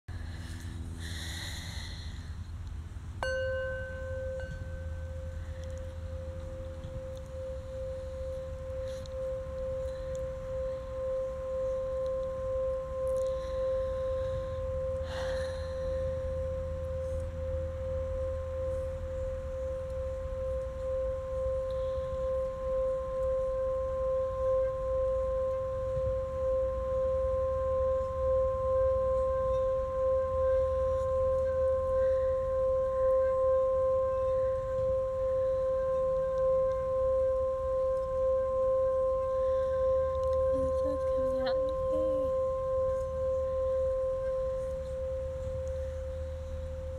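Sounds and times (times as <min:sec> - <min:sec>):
singing bowl ringing: 0:03.1 - 0:46.9.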